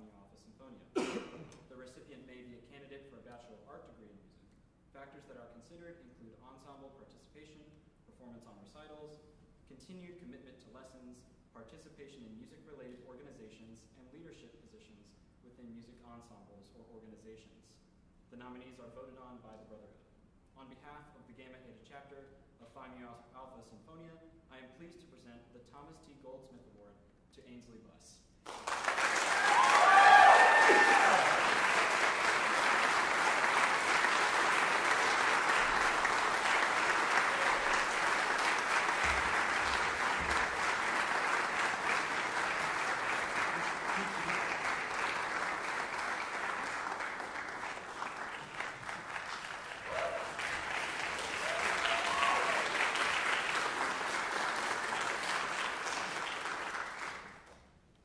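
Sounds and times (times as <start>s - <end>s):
audience applauding: 28.5s - 57.5s
voices cheering: 29.0s - 45.2s, 49.8s - 53.0s.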